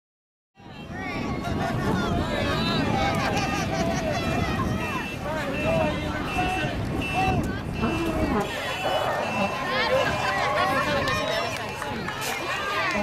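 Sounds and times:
crowd talking and calling out: 0:00.6 - 0:13.0
short high beep: 0:04.9 - 0:10.2.

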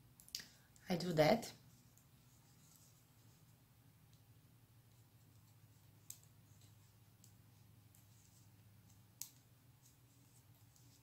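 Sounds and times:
knitting needles clicking: 0:04.9 - 0:11.0.

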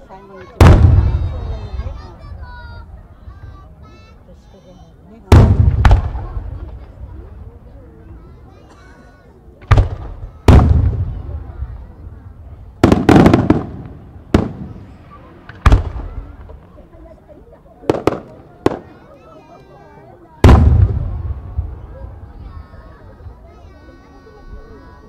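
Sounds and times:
firework shells bursting: 0:12.8 - 0:14.9.

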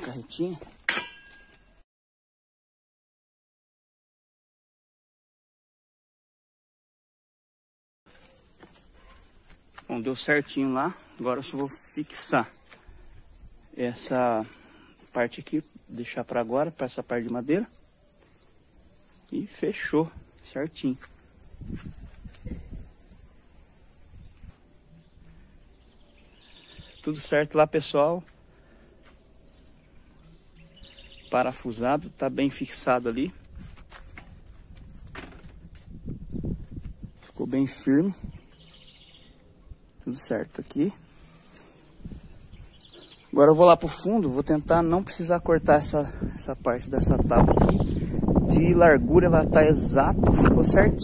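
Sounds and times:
metallic clang ringing: 0:00.9 - 0:01.7
faint high hiss: 0:12.0 - 0:25.1
microphone handling noise: 0:21.5 - 0:23.0, 0:33.4 - 0:37.4, 0:47.0 - 0:48.7
low wind rumble: 0:33.4 - 0:37.2, 0:41.9 - 0:42.9, 0:44.5 - 0:51.0.

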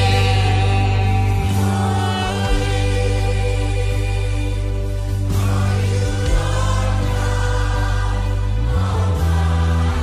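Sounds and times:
choir singing worship song: 0:00.0 - 0:10.0.

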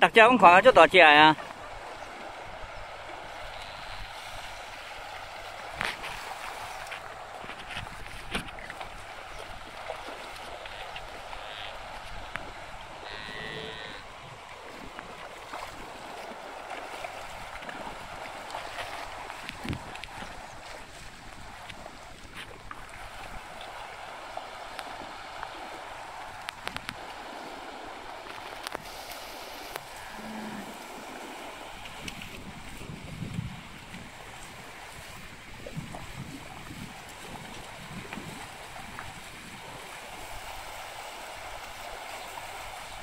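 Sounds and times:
shallow river over stones: 0:00.0 - 0:43.0.

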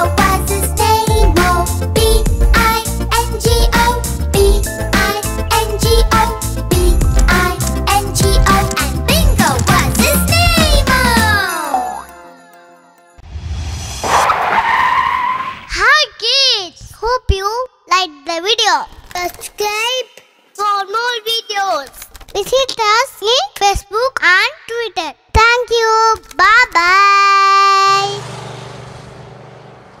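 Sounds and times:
tyre screech: 0:14.0 - 0:15.8.

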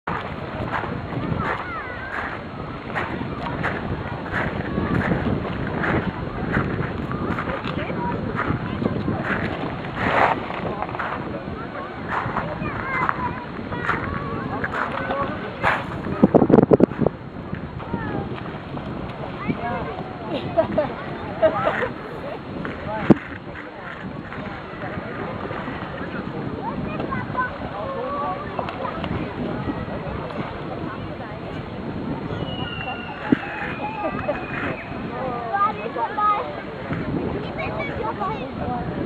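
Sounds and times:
faint distant voices: 0:00.0 - 0:39.0
wind on microphone: 0:00.0 - 0:39.0.

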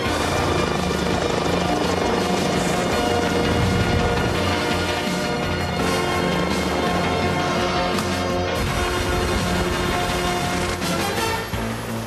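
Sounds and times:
helicopter rotors beating: 0:00.0 - 0:12.0
soundtrack music with held tones: 0:00.0 - 0:12.0.

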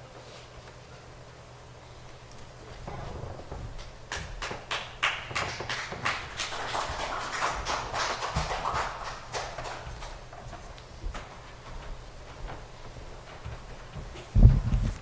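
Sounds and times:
low steady hum: 0:00.0 - 0:15.0
footsteps of shoes: 0:05.4 - 0:15.0.

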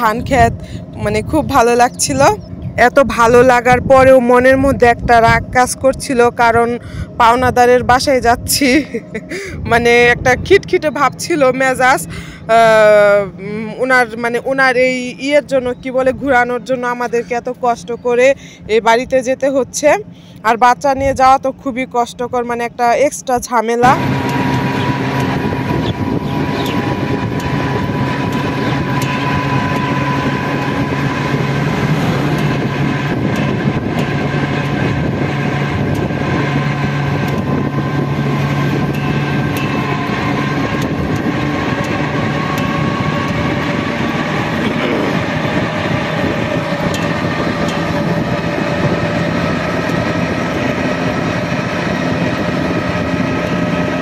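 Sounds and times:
drive hum and whine: 0:00.0 - 0:54.0
road and wind noise: 0:00.0 - 0:54.0.

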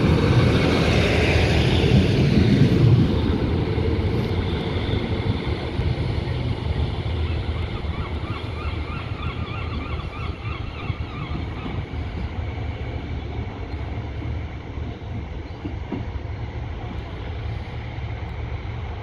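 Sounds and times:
diesel railcar engine rumbling: 0:00.0 - 0:19.0.

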